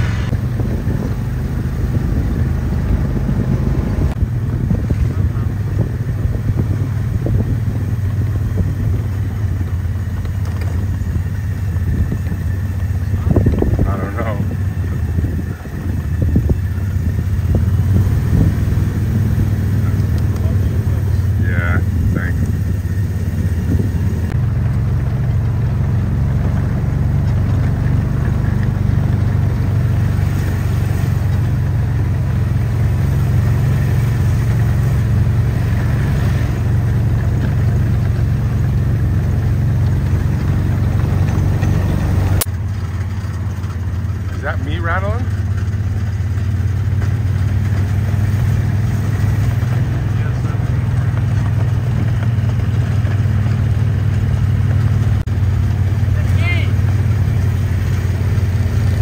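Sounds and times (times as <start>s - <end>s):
vehicle engines idling: 0.0s - 59.0s.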